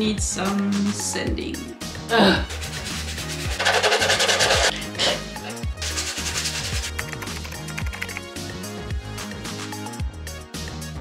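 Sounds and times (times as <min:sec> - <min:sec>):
background music with steady beat: 0:00.0 - 0:11.0
rasping on hollow plastic: 0:02.5 - 0:04.7.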